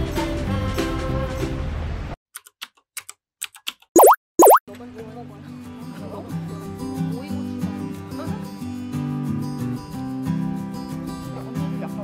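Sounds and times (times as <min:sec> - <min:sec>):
boing sound effects: 0:04.0 - 0:04.6.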